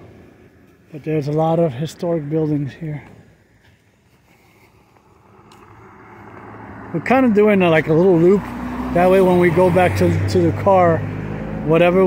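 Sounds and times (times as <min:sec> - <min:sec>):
car on the street: 0:00.0 - 0:12.0.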